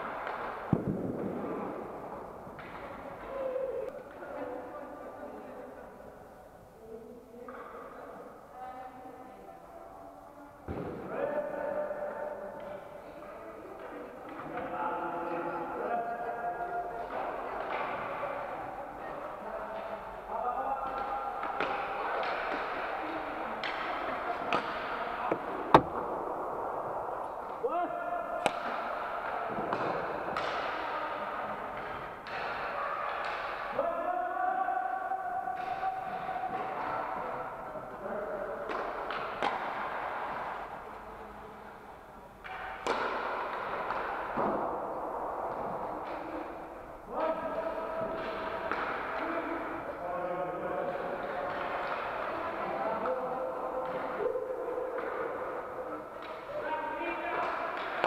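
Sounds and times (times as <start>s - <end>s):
hockey sticks and puck clacking: 0.0s - 3.5s, 17.0s - 18.4s, 19.7s - 27.6s, 28.4s - 33.8s, 35.5s - 37.4s, 38.0s - 50.0s, 50.8s - 58.0s.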